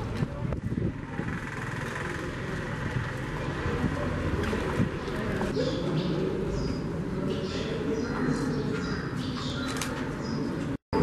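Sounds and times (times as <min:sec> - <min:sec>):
low traffic rumble: 0:00.0 - 0:11.0.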